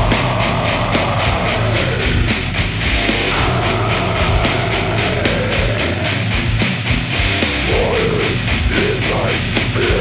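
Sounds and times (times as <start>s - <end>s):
distorted electric guitars: 0.0s - 10.0s
fast drumming: 0.0s - 10.0s.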